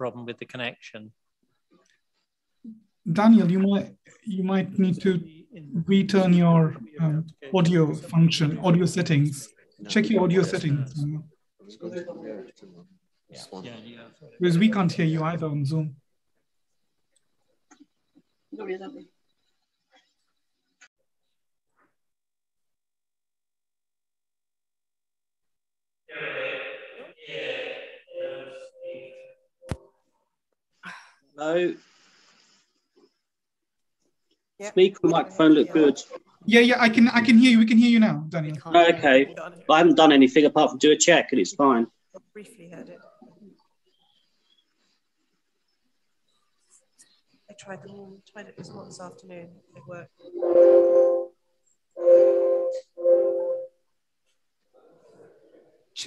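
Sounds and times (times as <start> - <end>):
horn-like electronic tone: 28.1 - 29.8, 50.3 - 51.3, 52.0 - 53.7.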